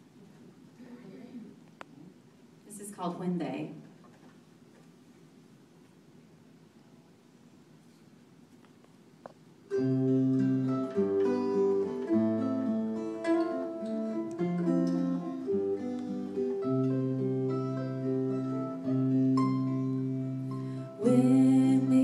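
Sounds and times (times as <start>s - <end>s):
acoustic guitar playing: 9.7s - 22.0s.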